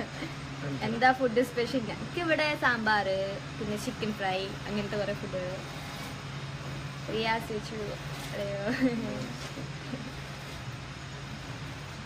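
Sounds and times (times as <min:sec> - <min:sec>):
woman's voice: 0:00.0 - 0:05.6, 0:07.1 - 0:09.6
low background hum: 0:00.0 - 0:12.0.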